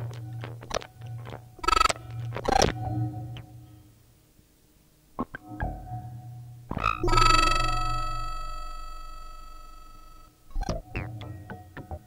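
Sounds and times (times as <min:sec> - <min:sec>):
low buzzing synth drone: 0:01.2 - 0:04.0, 0:05.7 - 0:10.4
bright ringing synth tone: 0:01.6 - 0:02.0, 0:06.8 - 0:10.4.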